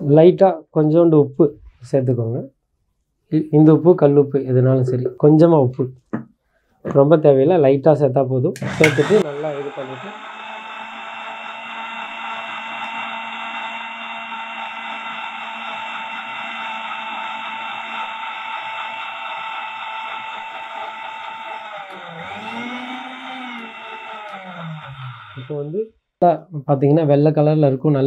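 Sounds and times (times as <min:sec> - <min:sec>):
mixer grinder motor whine: 0:08.6 - 0:25.9.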